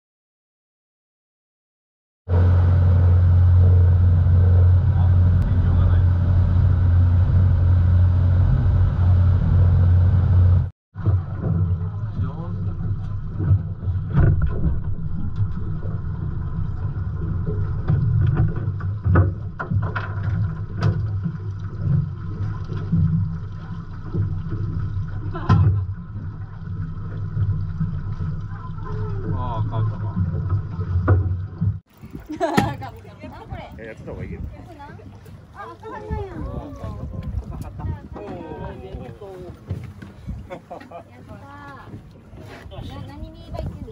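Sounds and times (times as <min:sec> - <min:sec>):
boat engine droning: 0:02.3 - 0:43.9.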